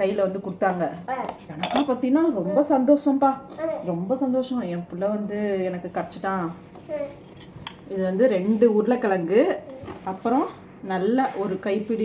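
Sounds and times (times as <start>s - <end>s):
woman's voice: 0.0s - 6.6s, 7.9s - 12.0s
metal bowl clinking: 1.2s - 2.0s.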